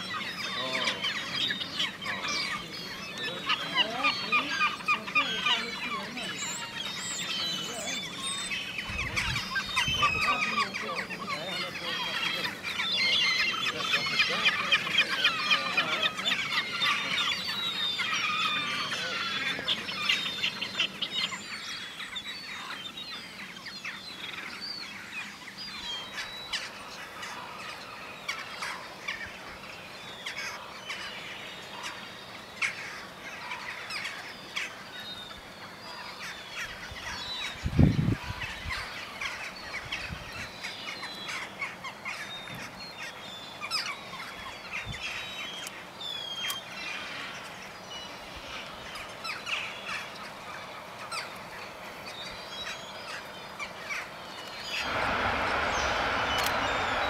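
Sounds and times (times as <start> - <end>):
birds calling: 0.0 - 57.0.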